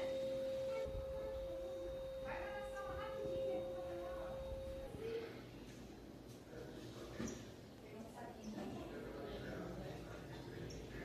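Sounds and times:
steady pure tone: 0.0 - 6.2.

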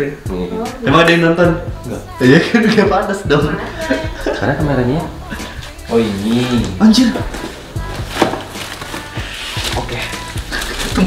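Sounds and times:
background music: 0.0 - 11.0
camera bag knocks and rustling: 7.3 - 9.1.

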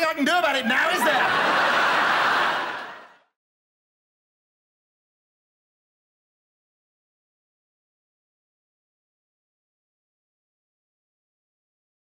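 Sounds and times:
audience laughter: 0.6 - 3.3.

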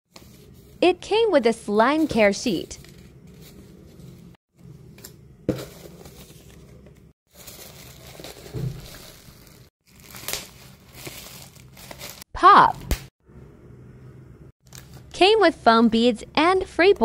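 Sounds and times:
bubble wrap crackles: 7.3 - 12.3
bubble wrap crinkling: 7.3 - 12.3.

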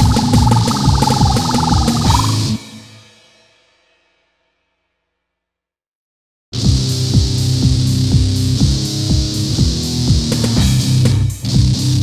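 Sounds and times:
wavering pitched tone: 0.0 - 2.6
metal drums and guitars: 0.0 - 3.3.

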